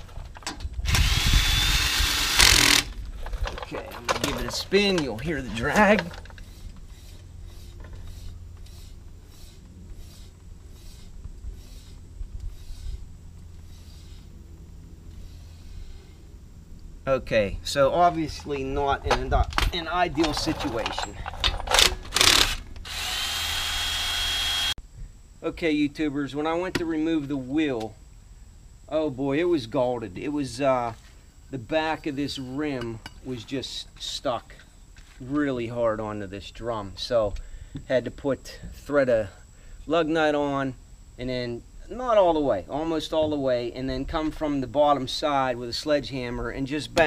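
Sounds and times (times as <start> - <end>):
cordless drill spinning lug nut: 0.9 - 3.0, 20.3 - 24.7.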